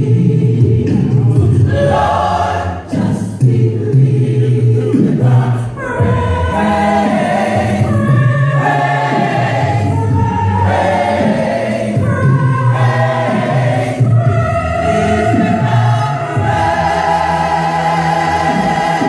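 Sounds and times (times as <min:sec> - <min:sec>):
large choir singing a cappella: 0:00.0 - 0:19.0.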